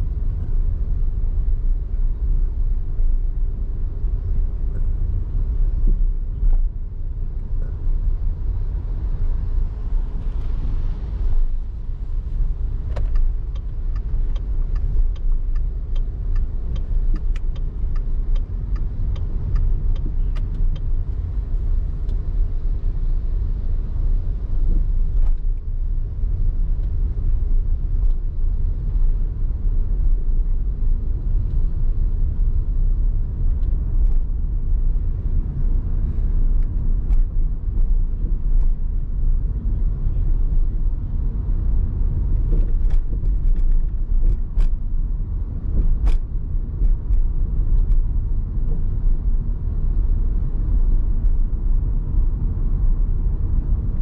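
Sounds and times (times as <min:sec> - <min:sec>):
car tyres and engine rumble: 0:00.0 - 0:54.0.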